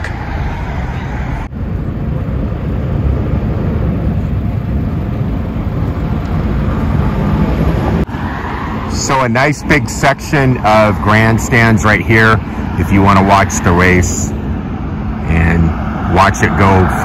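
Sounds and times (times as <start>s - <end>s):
road traffic rumble: 0.0s - 17.0s.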